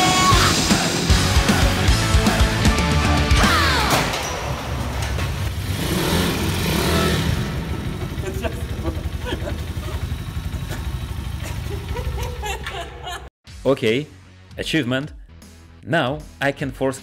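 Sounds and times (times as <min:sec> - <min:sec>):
motorbike engine idling: 0:05.3 - 0:13.2.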